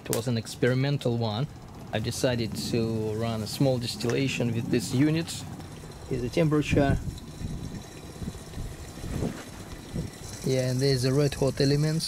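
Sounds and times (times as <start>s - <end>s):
wind buffeting microphone: 1.6s - 11.8s.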